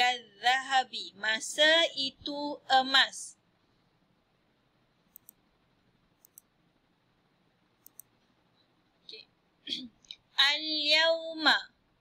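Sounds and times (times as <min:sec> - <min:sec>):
computer mouse double clicks: 0:05.1 - 0:05.4, 0:06.2 - 0:06.5, 0:07.8 - 0:08.1.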